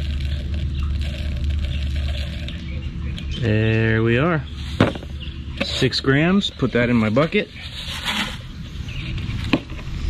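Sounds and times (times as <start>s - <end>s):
granules poured into plastic bucket: 0.0s - 2.6s.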